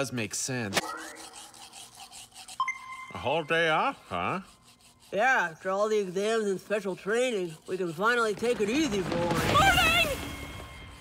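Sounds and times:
toothbrush scrubbing teeth: 0:00.8 - 0:09.2.

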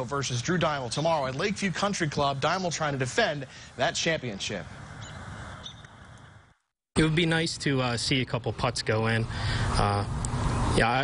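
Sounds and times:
steady outdoor hiss: 0:00.0 - 0:11.0
faint high bird chirps: 0:05.0 - 0:06.0.

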